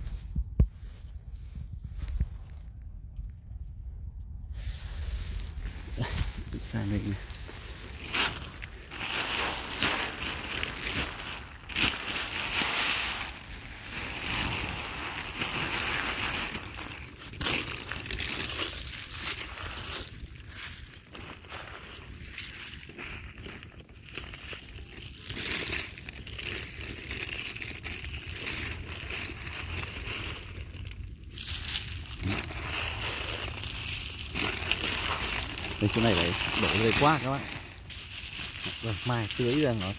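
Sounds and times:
plastic sack rustling: 4.6s - 39.9s.

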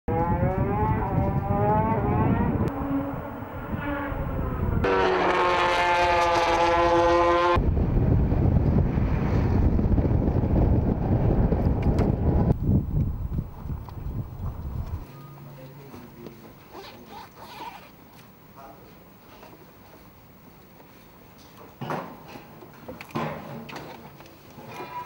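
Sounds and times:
racing motorcycle engine revving: 0.1s - 7.6s.

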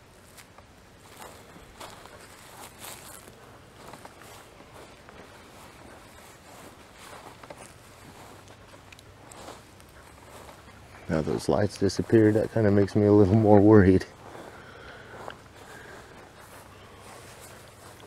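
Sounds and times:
footsteps crunching on dry grass: 0.0s - 18.0s.

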